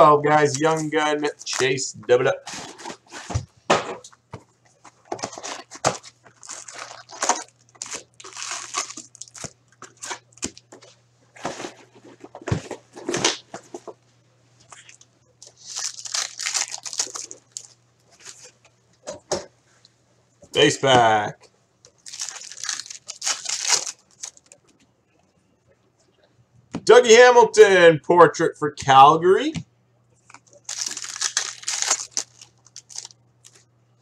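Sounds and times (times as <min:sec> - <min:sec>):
foil packs crinkling: 0:00.4 - 0:01.8, 0:05.1 - 0:10.7, 0:15.4 - 0:18.5, 0:21.9 - 0:24.6, 0:30.3 - 0:33.6
cardboard scraping: 0:02.4 - 0:03.5, 0:11.4 - 0:13.9.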